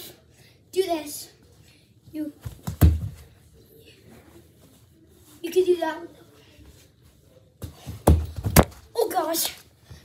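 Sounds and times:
bare foot kicking a ball: 0:02.4 - 0:03.3, 0:07.6 - 0:08.9.

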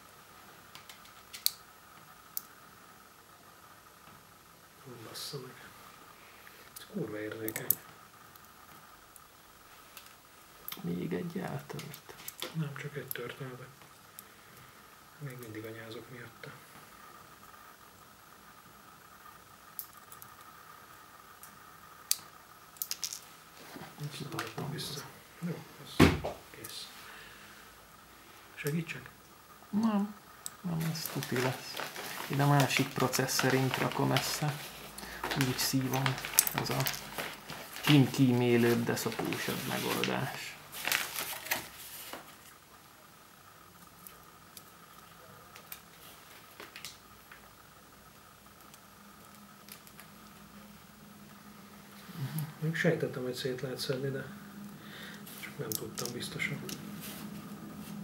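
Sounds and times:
faint high whine: 0:01.5 - 0:58.0.

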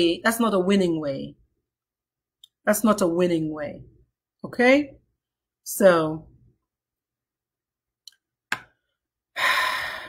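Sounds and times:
person sighing: 0:09.4 - 0:10.0.

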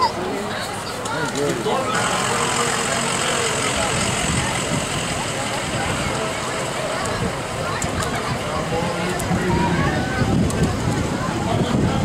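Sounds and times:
people talking: 0:00.0 - 0:12.0
bus driving past: 0:01.7 - 0:09.0.

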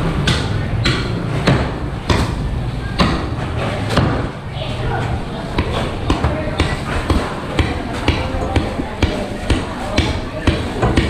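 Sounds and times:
cleaver chopping meat on wood: 0:00.2 - 0:02.4, 0:03.0 - 0:04.3, 0:05.5 - 0:11.0.

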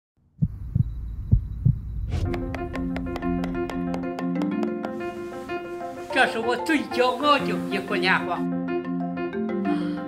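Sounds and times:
low hum: 0:00.2 - 0:03.8
deep thumps: 0:00.4 - 0:05.0.

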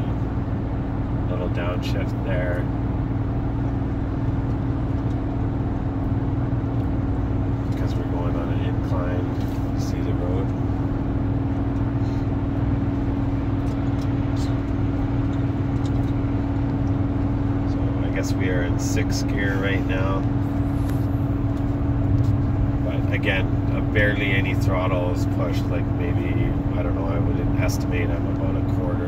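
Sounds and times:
engine droning in cabin: 0:00.0 - 0:29.0
road and tyre noise: 0:00.0 - 0:29.0.

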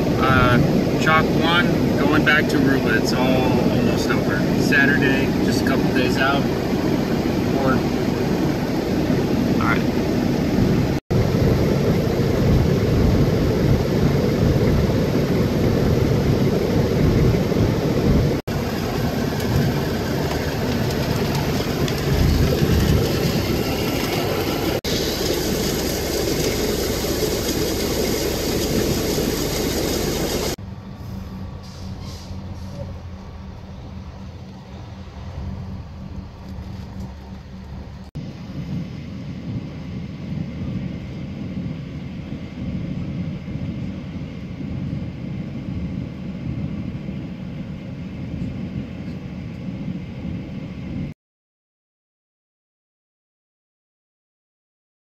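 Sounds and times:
vehicle engine and road rumble: 0:00.0 - 0:51.1.

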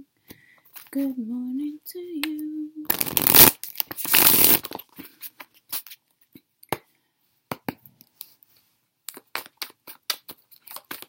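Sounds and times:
cards being shuffled: 0:02.9 - 0:06.0, 0:09.1 - 0:11.0.

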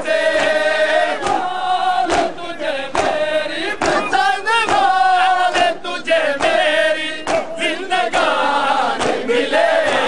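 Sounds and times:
men chanting together: 0:00.0 - 0:10.0.

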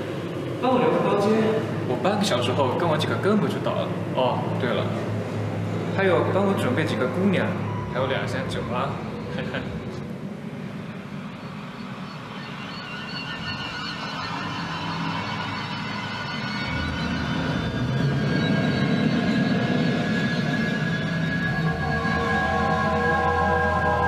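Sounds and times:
high wavering tones: 0:00.0 - 0:24.0
low drone: 0:00.0 - 0:24.0.

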